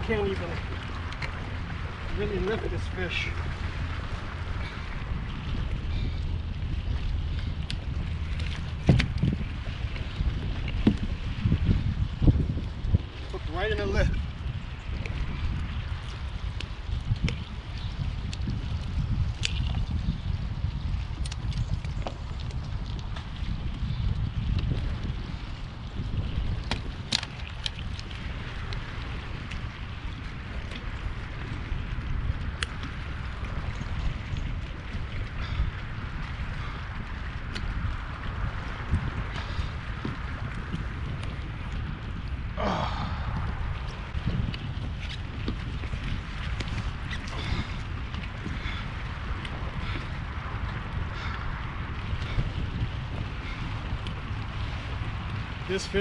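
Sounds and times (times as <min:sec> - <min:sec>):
wind rumbling on microphone: 0:00.0 - 0:56.0.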